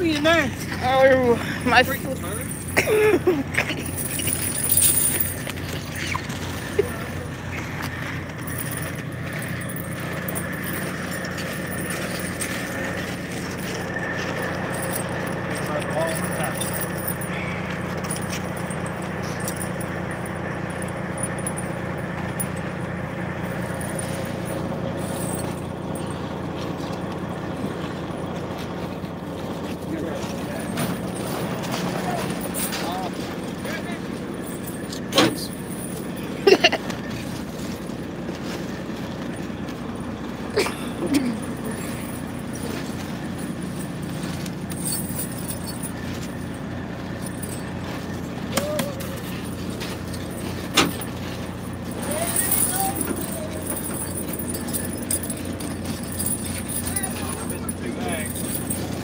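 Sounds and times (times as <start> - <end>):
diesel truck engine idling: 0.0 - 59.0.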